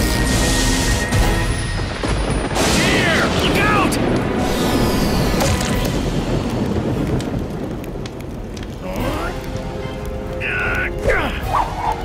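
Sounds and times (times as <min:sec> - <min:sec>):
campfire crackling: 0:00.2 - 0:12.0.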